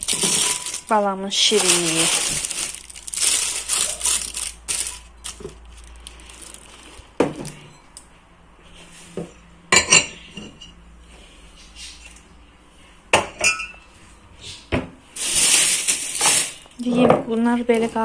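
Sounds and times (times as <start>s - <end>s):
candies clinking in glass dish: 0.0s - 6.8s
candy wrappers crinkling: 0.0s - 7.2s, 15.2s - 16.8s.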